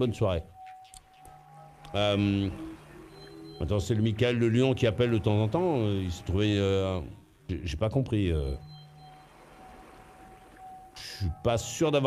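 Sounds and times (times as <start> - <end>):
faint steady hiss: 0.0 - 12.0
thin steady tone: 0.0 - 12.0.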